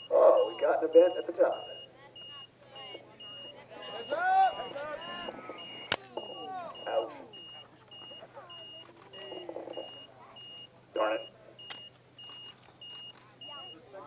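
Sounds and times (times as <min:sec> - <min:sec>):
faint voices: 0:00.0 - 0:11.7, 0:12.4 - 0:14.0
high-pitched electronic beep: 0:00.0 - 0:13.8.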